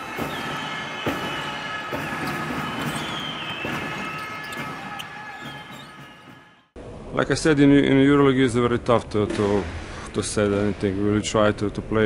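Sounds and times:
sneaker squeaks: 0.0s - 6.6s
basketballs bouncing on gym floor: 0.1s - 6.1s.

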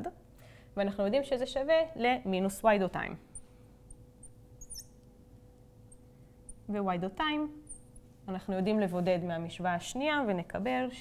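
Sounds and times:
faint steady hum: 0.0s - 11.0s
marker squeaking on glass: 4.2s - 5.0s, 7.6s - 8.0s.

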